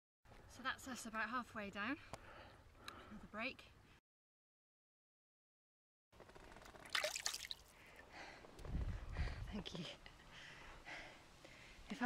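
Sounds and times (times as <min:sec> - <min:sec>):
water splashing in plastic bucket: 0:06.8 - 0:07.7.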